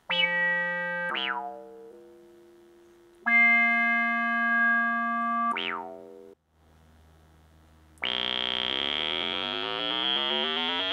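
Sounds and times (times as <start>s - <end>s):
buzzy synthesizer notes: 0.0s - 6.4s, 8.0s - 10.9s.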